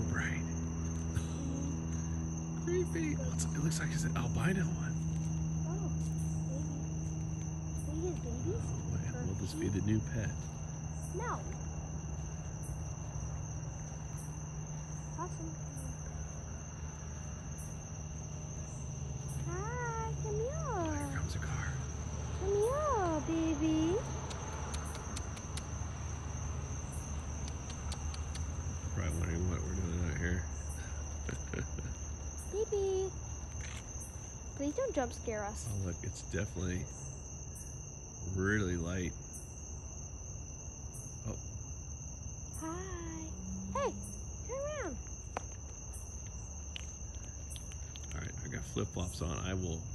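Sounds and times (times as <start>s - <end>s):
insects trilling: 0.0s - 49.9s.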